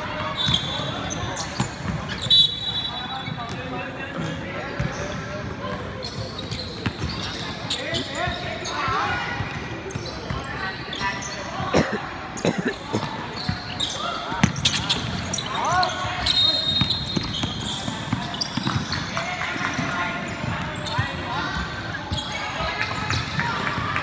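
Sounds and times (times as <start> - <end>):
sneakers squeaking: 0.0 - 24.0
voices in a large hall: 0.0 - 24.0.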